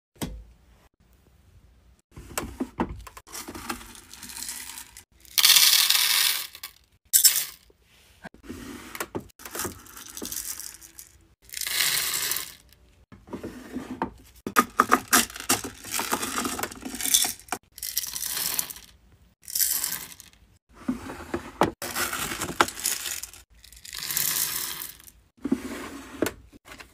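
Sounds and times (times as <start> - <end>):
wax beads rattling into metal pot: 3.7 - 7.6, 9.4 - 12.8, 15.0 - 20.4, 21.8 - 25.2.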